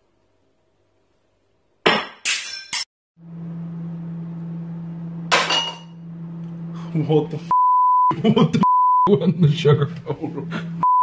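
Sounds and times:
steady low hum: 3.2 - 11.0.

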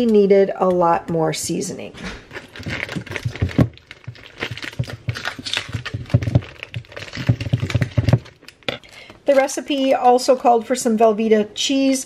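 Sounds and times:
stiff plastic crinkling: 2.0 - 10.4
scissors cutting plastic bag: 2.3 - 9.6.

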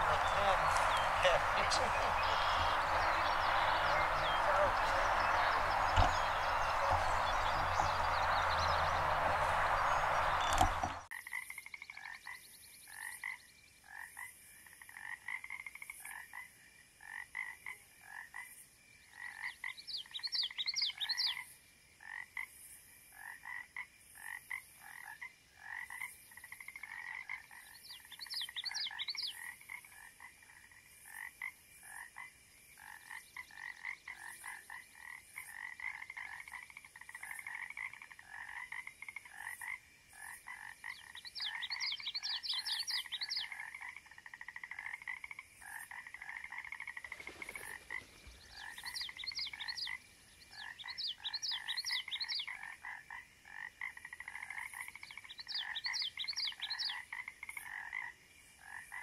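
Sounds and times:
frogs croaking: 0.0 - 59.0.

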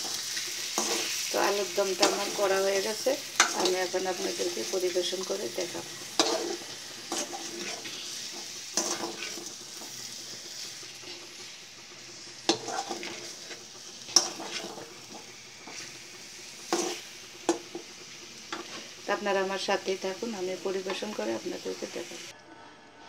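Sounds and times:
potatoes sizzling in oil: 0.0 - 22.3
spatula scraping pan: 0.1 - 19.0.

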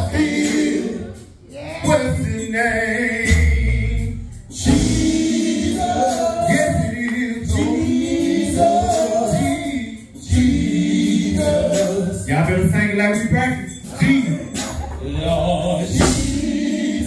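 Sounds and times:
male vocal group singing harmony: 0.0 - 17.0.

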